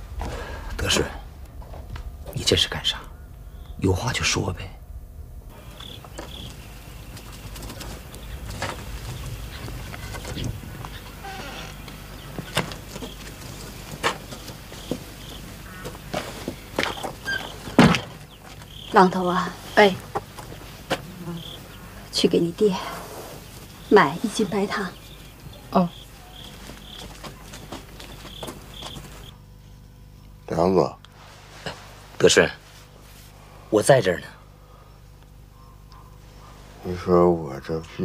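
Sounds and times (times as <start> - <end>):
low rumble: 0.0 - 17.7
faint insect buzz: 0.0 - 38.0
steady background hiss: 0.0 - 38.0.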